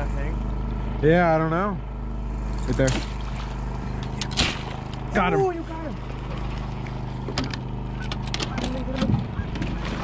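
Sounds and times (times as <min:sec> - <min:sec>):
small engine humming: 0:00.0 - 0:10.0
fish splashing at surface: 0:04.4 - 0:05.0
light clicks and knocks: 0:06.3 - 0:09.7.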